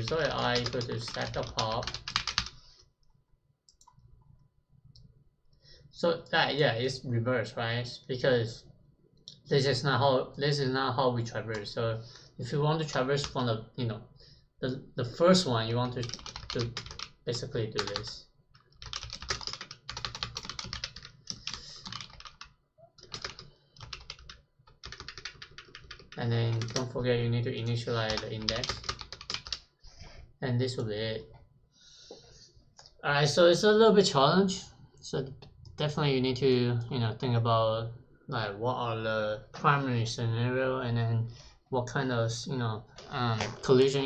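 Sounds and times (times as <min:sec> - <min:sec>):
computer keyboard keystrokes: 0:00.0 - 0:02.6, 0:16.0 - 0:17.1, 0:17.8 - 0:18.0, 0:18.8 - 0:26.9, 0:28.0 - 0:29.6.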